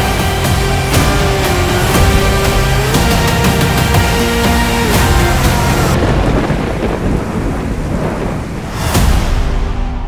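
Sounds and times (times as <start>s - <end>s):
deep rolling rumble: 0.0s - 10.0s
music: 0.0s - 10.0s
steady rain-like hiss: 1.4s - 9.1s.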